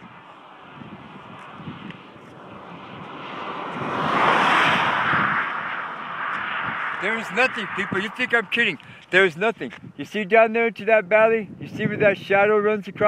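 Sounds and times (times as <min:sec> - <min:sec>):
vehicle passing on highway: 0:00.0 - 0:09.9.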